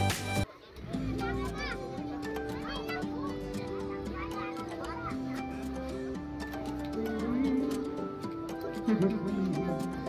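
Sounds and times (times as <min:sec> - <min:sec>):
children shouting and chattering: 0:00.0 - 0:10.0
music playing: 0:00.0 - 0:10.0.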